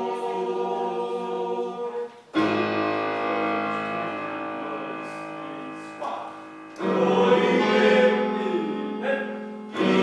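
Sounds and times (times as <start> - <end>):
choir singing: 0.0 - 10.0
instrumental chord: 2.4 - 10.0.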